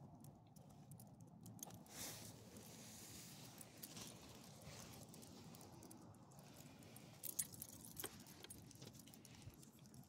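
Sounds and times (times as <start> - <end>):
leash clips and tags jingling: 7.1 - 10.0.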